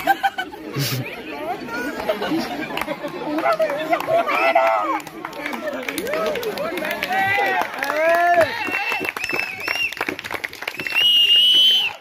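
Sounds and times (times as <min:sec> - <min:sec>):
men chattering excitedly: 0:00.0 - 0:08.4.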